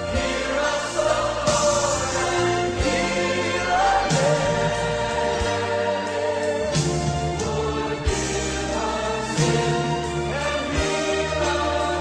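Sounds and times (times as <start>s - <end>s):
choir singing sustained chords: 0.0s - 12.0s
instrumental accompaniment: 0.0s - 12.0s.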